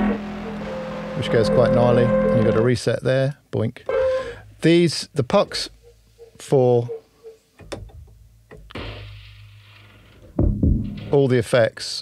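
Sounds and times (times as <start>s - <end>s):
low hum: 0.0s - 2.7s, 7.8s - 11.3s
sustained noisy hit: 0.0s - 2.7s, 10.4s - 11.3s
heavy low thuds: 10.2s - 11.2s
sharp percussive knocks: 10.4s - 11.2s.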